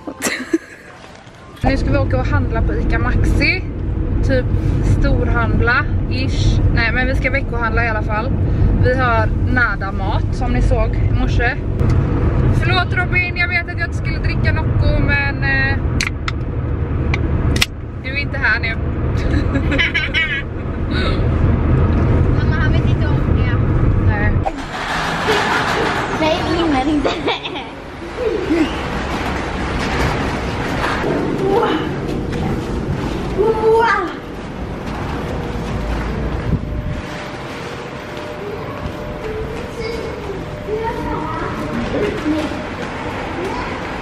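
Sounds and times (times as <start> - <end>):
woman laughing: 0.0 - 1.0, 19.2 - 21.3, 27.1 - 28.9
shopping trolley rolling on tiles: 24.6 - 27.3, 27.9 - 44.0.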